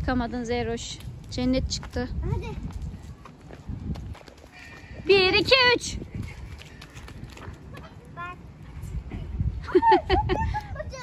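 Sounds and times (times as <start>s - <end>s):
children's footsteps on dirt: 0.8s - 9.0s.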